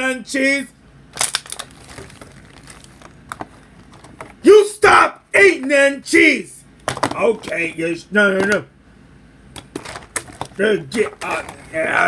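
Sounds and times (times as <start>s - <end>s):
plastic bag crinkling: 1.2s - 4.4s.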